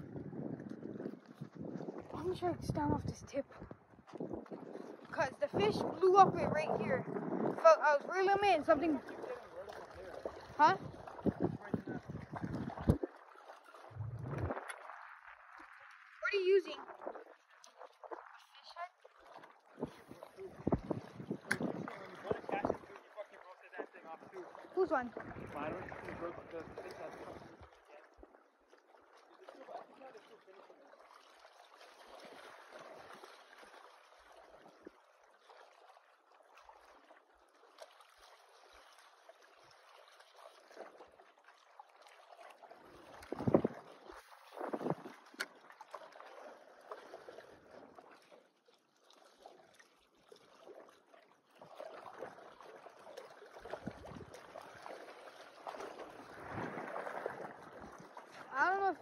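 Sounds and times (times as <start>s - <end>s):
wind on microphone: 0.0s - 13.1s, 13.8s - 15.9s, 19.8s - 23.0s, 24.9s - 27.7s, 43.1s - 45.5s, 53.7s - 54.5s, 56.0s - 58.2s
waves washing against rocks: 55.8s - 59.0s.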